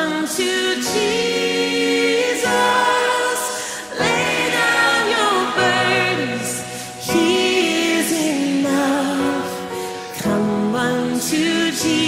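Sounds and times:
choir singing in harmony: 0:00.0 - 0:12.0.

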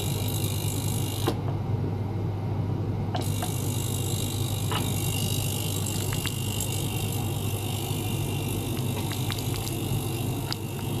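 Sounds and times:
ultrasonic cleaner humming: 0:03.1 - 0:11.0.

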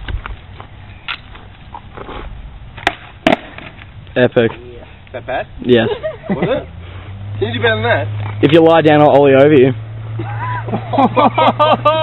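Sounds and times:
skateboard wheels on asphalt: 0:00.0 - 0:05.1
sharp skateboard clacks: 0:02.8 - 0:03.9.

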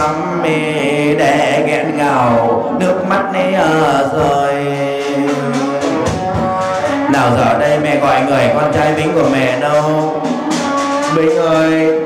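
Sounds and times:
man chanting through loudspeaker: 0:00.0 - 0:12.0.

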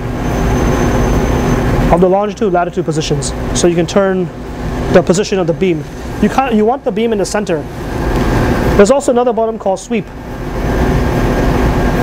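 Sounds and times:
machinery rumble and hiss: 0:00.0 - 0:12.0.

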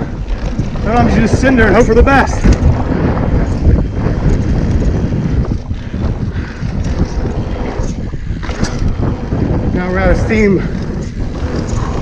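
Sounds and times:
bike tyres rolling over dirt: 0:00.0 - 0:12.0
wind buffeting microphone: 0:00.0 - 0:12.0.

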